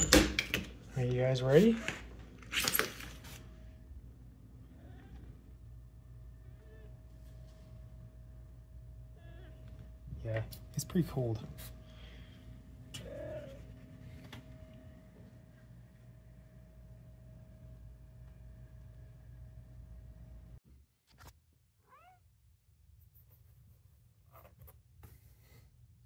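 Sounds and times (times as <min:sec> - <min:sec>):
cat meowing: 0:04.6 - 0:05.4.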